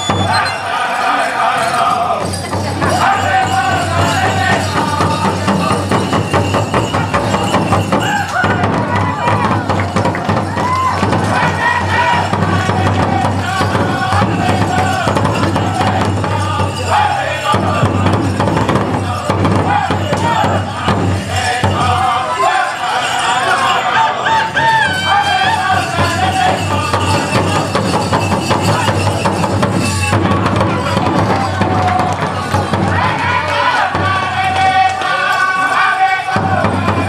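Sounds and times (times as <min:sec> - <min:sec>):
men singing: 0:00.0 - 0:10.3, 0:10.9 - 0:37.0
bells jingling: 0:00.0 - 0:37.0
big drum beat: 0:02.2 - 0:22.2, 0:24.7 - 0:34.8, 0:36.4 - 0:37.0.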